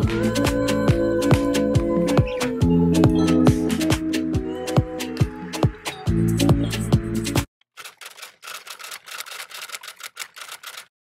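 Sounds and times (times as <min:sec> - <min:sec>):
typewriter keys clicking: 0:07.7 - 0:10.9.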